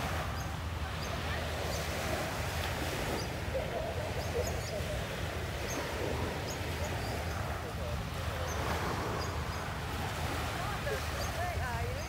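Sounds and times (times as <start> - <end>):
wind and surf rumble: 0.0 - 12.0.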